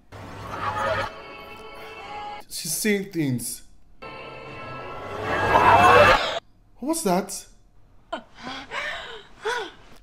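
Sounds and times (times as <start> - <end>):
woman gasping: 8.3 - 10.0.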